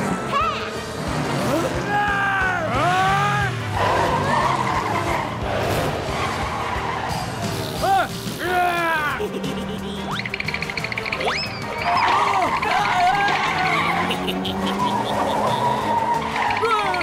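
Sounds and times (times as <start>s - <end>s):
cartoon karts running and skidding: 0.0s - 17.0s
light background music: 0.0s - 17.0s.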